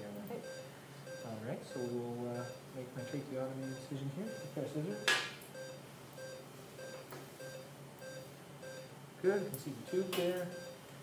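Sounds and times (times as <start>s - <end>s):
low equipment hum: 0.0s - 11.0s
patient monitor beeping: 0.4s - 11.0s.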